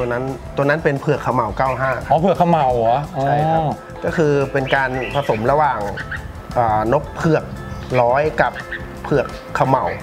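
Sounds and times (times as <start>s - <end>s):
background music: 0.0s - 10.0s
man speaking: 0.0s - 10.0s.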